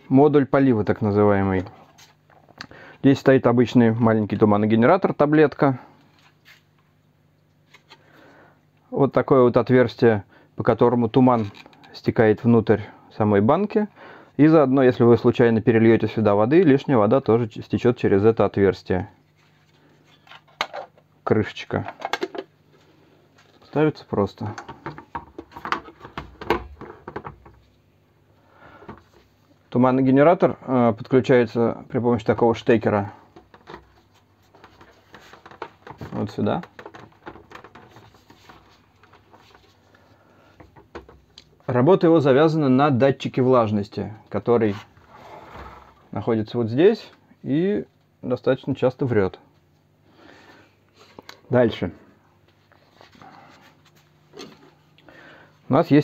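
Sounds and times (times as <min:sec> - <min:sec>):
faint scratching: 0:44.6 - 0:46.1.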